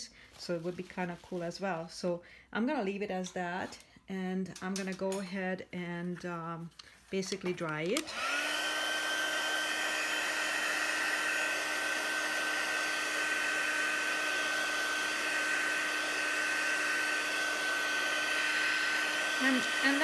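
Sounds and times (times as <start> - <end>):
heat gun blowing with fan whine: 7.6 - 20.0.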